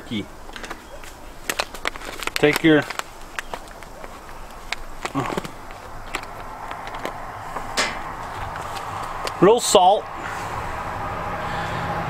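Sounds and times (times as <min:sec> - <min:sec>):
plastic pouch crinkling: 0:00.5 - 0:09.4.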